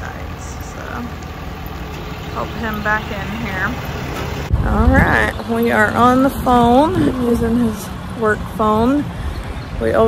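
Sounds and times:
truck engine rumble: 0:00.0 - 0:10.0.

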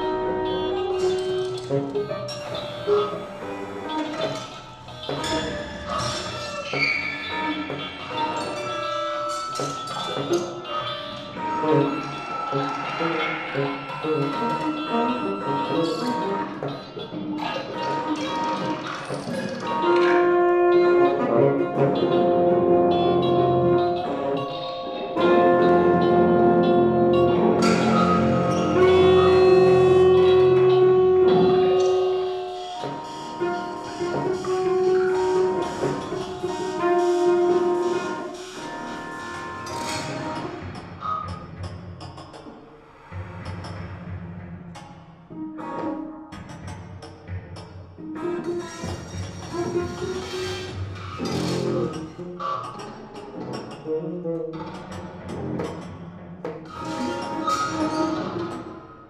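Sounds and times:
cello: 0:00.0 - 0:41.9, 0:42.8 - 0:59.0
tenor saxophone: 0:19.7 - 0:39.8.

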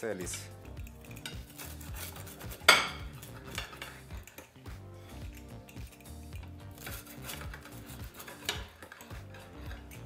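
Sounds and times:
pizza cutter scraping plate: 0:01.1 - 0:04.1, 0:06.6 - 0:10.0.

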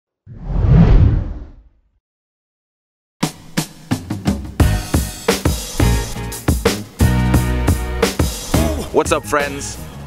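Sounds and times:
whoosh sound effect: 0:00.3 - 0:01.6.

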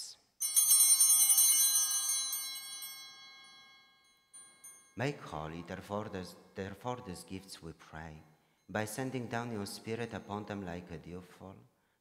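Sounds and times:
altar bells jangling: 0:00.4 - 0:06.8.

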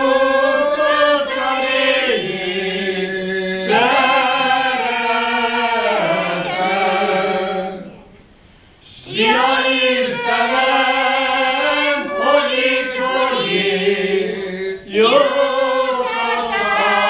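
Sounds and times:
group singing unaccompanied: 0:00.0 - 0:17.0.

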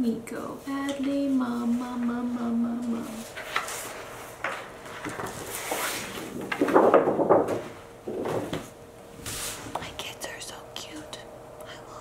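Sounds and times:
person whispering: 0:09.8 - 0:12.0.

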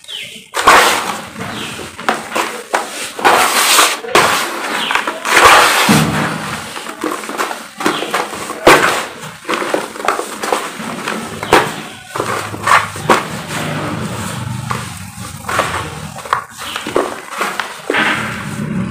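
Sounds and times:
hands crunching cement clumps: 0:00.0 - 0:18.9.

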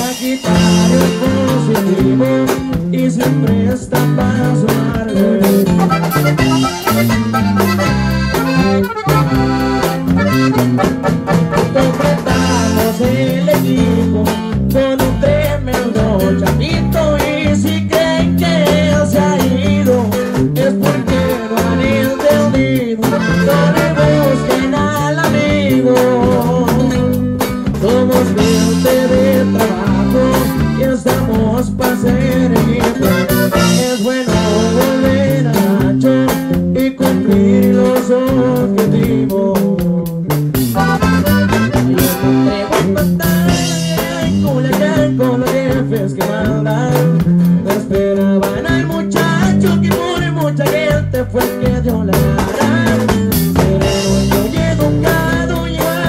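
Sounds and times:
accordion-like melody: 0:00.0 - 0:56.0
bass line: 0:00.0 - 0:56.0
plucked guitars: 0:00.0 - 0:56.0.

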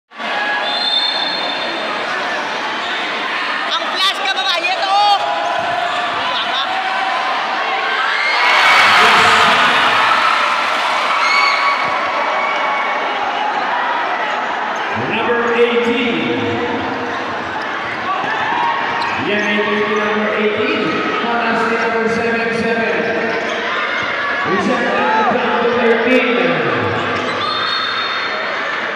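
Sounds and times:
crowd shouting and cheering: 0:00.1 - 0:28.9
shoe squeaks on court: 0:26.8 - 0:28.4.

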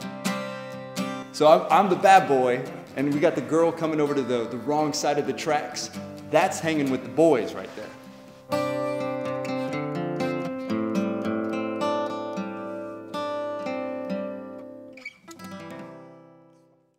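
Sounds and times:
acoustic guitar picking: 0:00.0 - 0:16.9.

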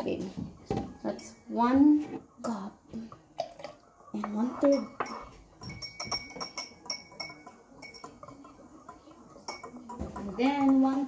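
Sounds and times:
whisk clinking against glass: 0:04.2 - 0:11.0.

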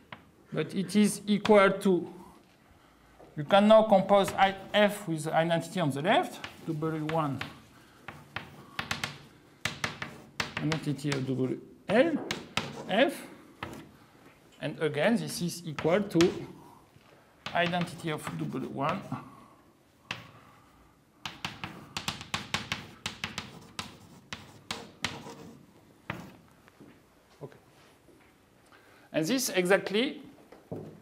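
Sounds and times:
chalk tapping on blackboard: 0:06.3 - 0:11.3, 0:12.3 - 0:12.9, 0:13.6 - 0:13.9, 0:15.7 - 0:16.6, 0:17.4 - 0:19.1, 0:20.0 - 0:20.4, 0:21.2 - 0:26.4.

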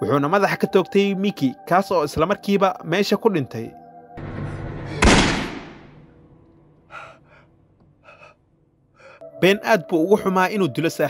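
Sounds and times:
gunshot ringing: 0:05.0 - 0:06.0
man gasping: 0:06.9 - 0:08.4, 0:09.0 - 0:09.2.

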